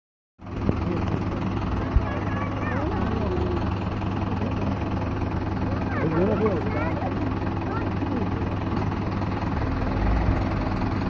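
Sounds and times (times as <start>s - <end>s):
fire engine idling: 0.4s - 11.0s
murmur of crowd voices: 0.8s - 9.6s.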